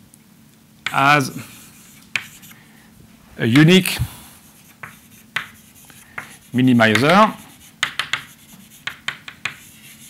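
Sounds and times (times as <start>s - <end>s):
chalk strokes on a blackboard: 1.4s - 2.6s, 3.9s - 10.0s.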